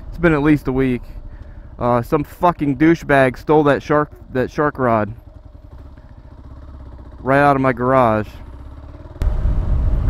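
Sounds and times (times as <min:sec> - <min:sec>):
motorcycle engine pulsing: 0:00.0 - 0:10.0.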